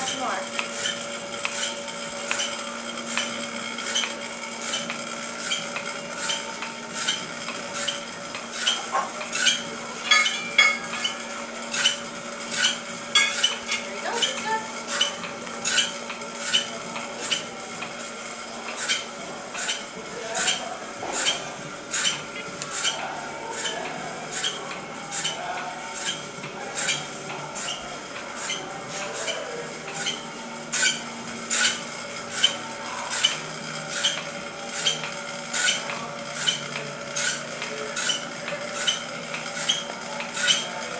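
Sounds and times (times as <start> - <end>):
rhythmic valve clicking: 0.0 - 40.9
steady machine hum: 0.0 - 40.9.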